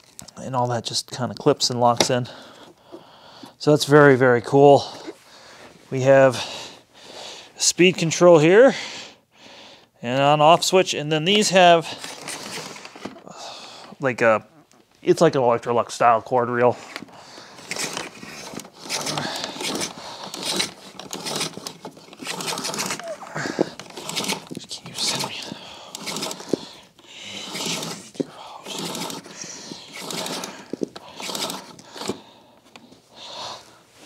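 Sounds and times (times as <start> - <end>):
power cord scraping pulls: 12.0 - 13.2, 16.7 - 32.9.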